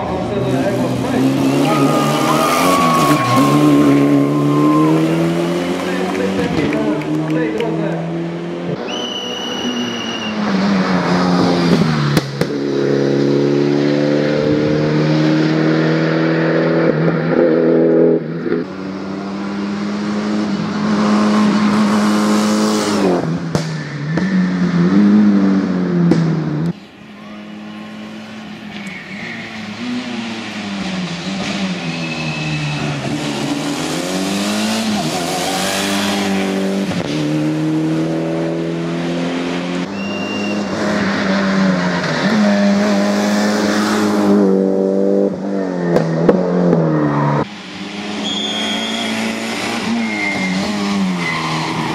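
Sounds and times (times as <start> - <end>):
car engine revving hard: 0.2 - 8.8, 10.4 - 26.7, 29.6 - 51.9.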